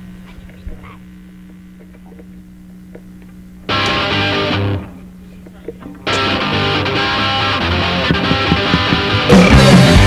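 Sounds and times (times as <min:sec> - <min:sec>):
mains hum: 0:00.0 - 0:10.0.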